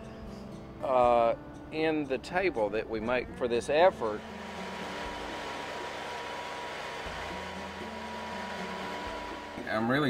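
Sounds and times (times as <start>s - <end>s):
band sawmill cutting log: 3.8s - 10.0s.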